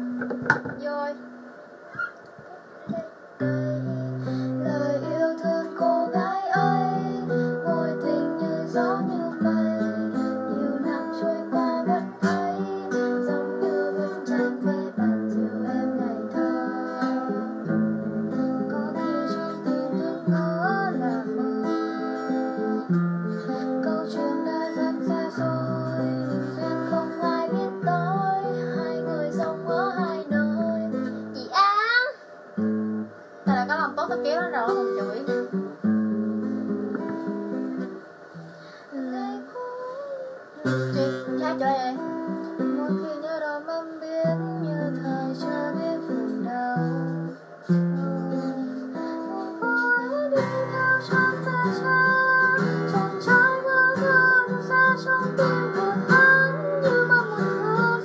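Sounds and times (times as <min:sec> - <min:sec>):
acoustic guitar: 0:00.0 - 0:58.0
young woman singing: 0:00.7 - 0:01.3, 0:02.9 - 0:32.0, 0:33.4 - 0:35.6, 0:38.8 - 0:58.0.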